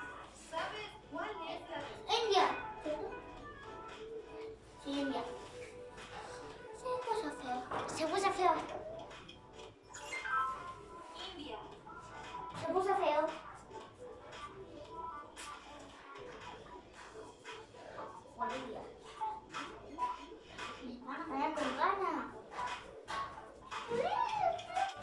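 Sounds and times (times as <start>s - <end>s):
background music: 0.0s - 25.0s
child's voice: 1.6s - 3.8s, 4.8s - 5.5s, 6.2s - 9.1s, 12.5s - 16.6s, 18.3s - 22.4s.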